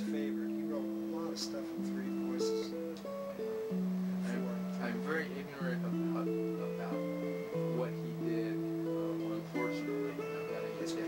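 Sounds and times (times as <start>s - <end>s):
electric guitar baroque-style playing: 0.0s - 11.0s.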